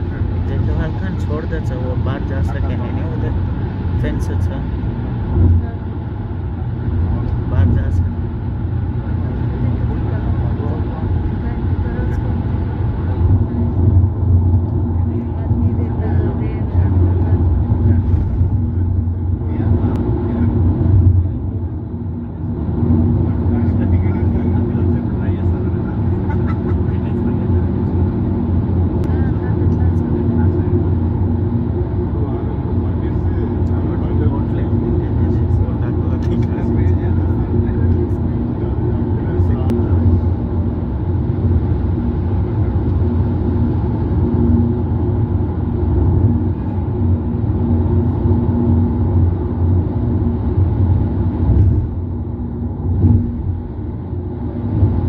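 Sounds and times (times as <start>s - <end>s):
steady hum: 0.0s - 55.0s
tyre and engine rumble: 0.0s - 55.0s.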